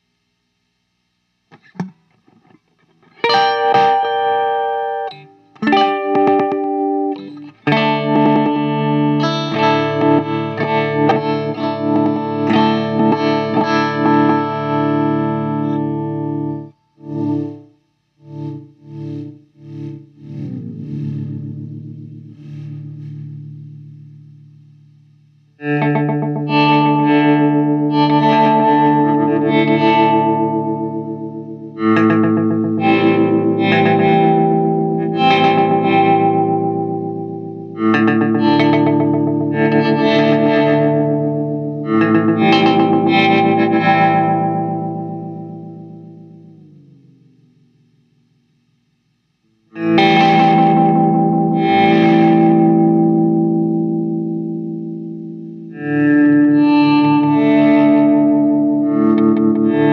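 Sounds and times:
synth-like electric guitar chords: 0.0 - 48.4, 49.4 - 59.9.

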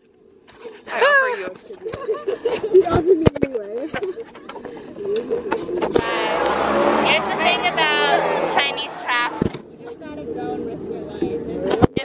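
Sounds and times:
voices of passers-by: 3.9 - 11.8
car driving past: 6.0 - 9.7.

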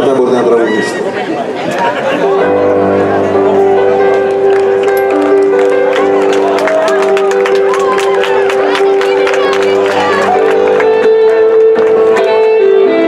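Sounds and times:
audience voices: 0.0 - 13.0
keyboard chords: 0.0 - 13.0
people clapping: 3.4 - 12.9.

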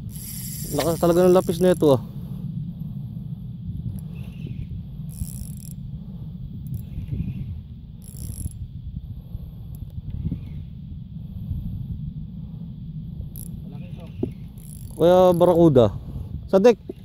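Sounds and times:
fishing reel whirring: 0.0 - 2.0, 3.9 - 5.9, 6.5 - 8.7, 13.3 - 15.7
low rumble: 0.0 - 16.9.

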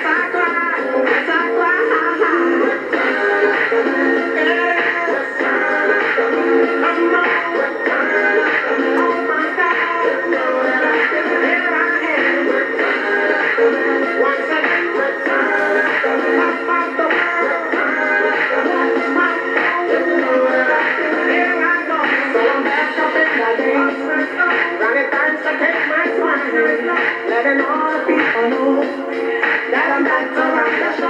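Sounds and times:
pop song on small radio speaker: 0.0 - 31.0.

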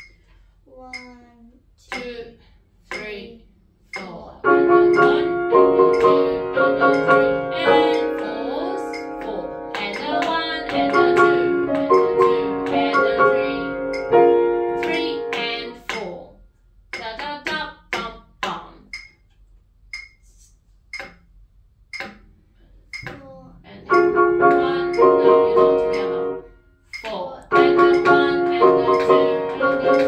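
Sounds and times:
piano chords: 4.4 - 16.0, 23.6 - 26.6, 27.5 - 30.0
short ticks: 18.9 - 20.2, 21.9 - 22.2.

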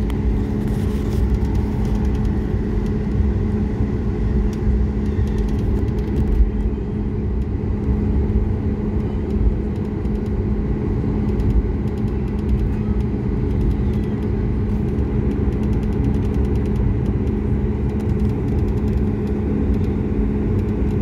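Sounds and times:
jet engines rumbling: 0.0 - 21.0
steady low hum: 0.0 - 21.0.

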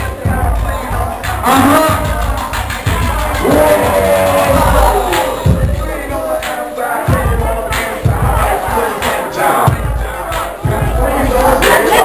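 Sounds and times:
dance music with heavy bass beat: 0.0 - 12.0
crowd shouting: 2.9 - 9.7.

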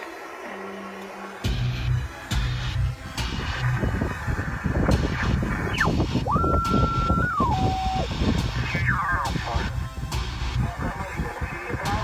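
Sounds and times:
garbled sideband radio signals: 0.0 - 12.0
radio band noise: 0.0 - 12.0
heterodyne whistle sweeping down: 5.7 - 8.1.

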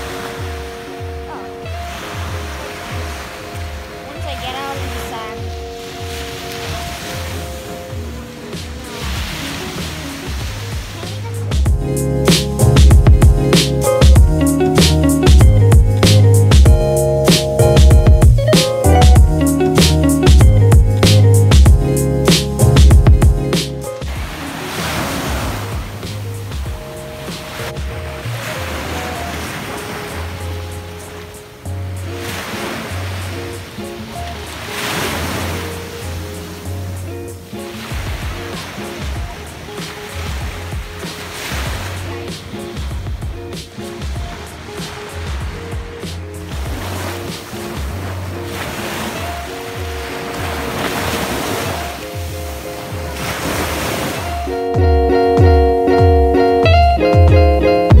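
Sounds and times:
small waves breaking on sand: 0.0 - 11.6, 23.6 - 54.5
background music with bass line: 0.0 - 58.0.

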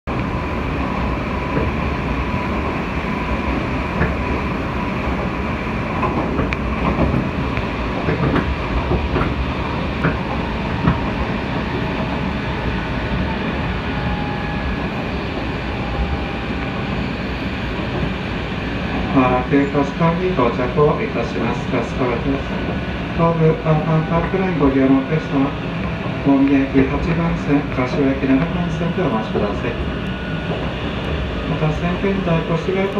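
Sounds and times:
train wheels rumbling: 0.1 - 32.9.

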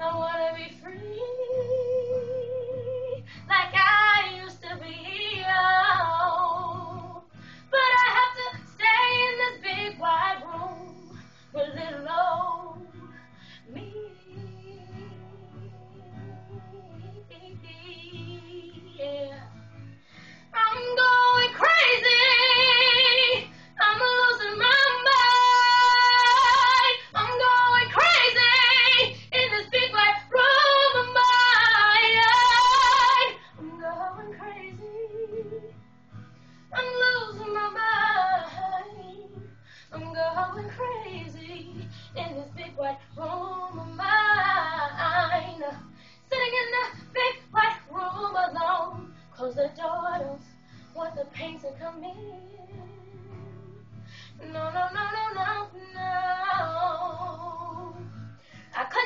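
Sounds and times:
girl singing: 0.0 - 19.5, 20.6 - 35.8, 36.7 - 58.1, 58.8 - 59.0.

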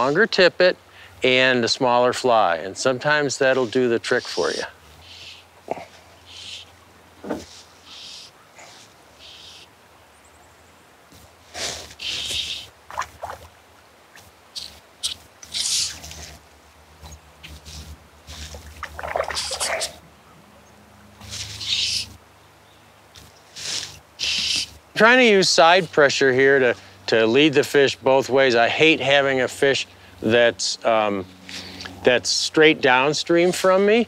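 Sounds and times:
fly line hissing zips: 11.4 - 12.8, 14.2 - 16.4, 17.4 - 20.0, 21.2 - 22.2, 23.5 - 24.8.

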